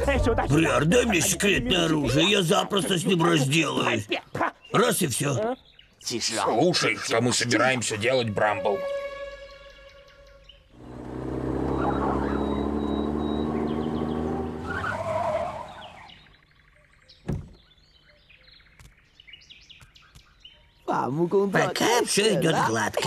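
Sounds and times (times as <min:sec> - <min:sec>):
cartoon truck engine running: 0:10.8 - 0:16.0.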